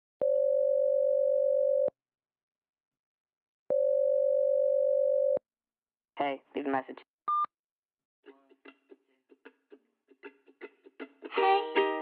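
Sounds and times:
telephone ringback tone: 0.2s - 1.9s, 3.7s - 5.4s.

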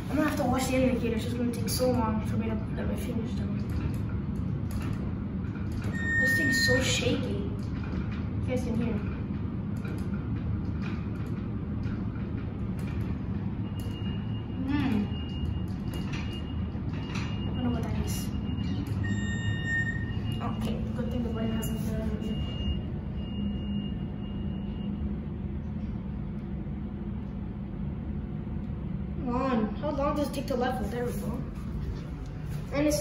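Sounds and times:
elevator car rumbling and rattling: 0.0s - 33.0s
hum: 0.0s - 33.0s
faint high steady tone: 5.9s - 7.2s.

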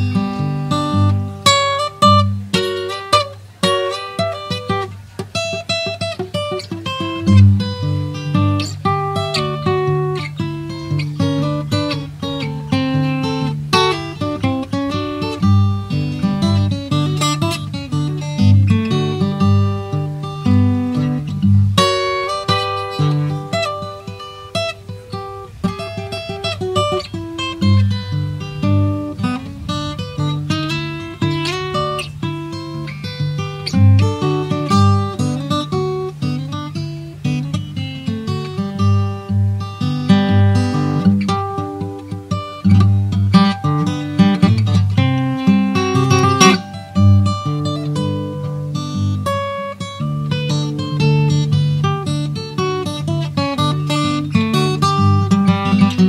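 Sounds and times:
fingerpicked acoustic guitar: 0.0s - 56.0s.

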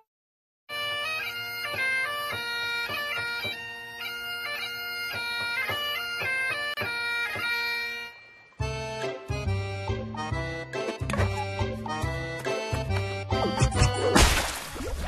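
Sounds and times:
bagpipe tune with drone: 0.7s - 13.3s.

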